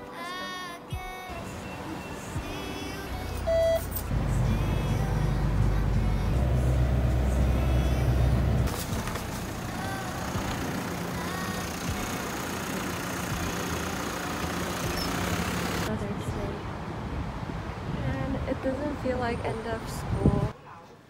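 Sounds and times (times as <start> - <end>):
street noise: 0.0 - 21.0
bus idling: 1.1 - 17.2
bus engine rumbling: 1.3 - 20.5.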